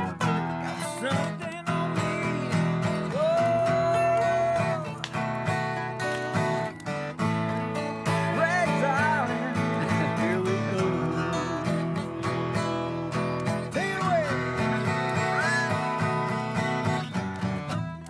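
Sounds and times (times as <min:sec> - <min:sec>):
acoustic guitars strumming country tune: 0:00.0 - 0:18.0.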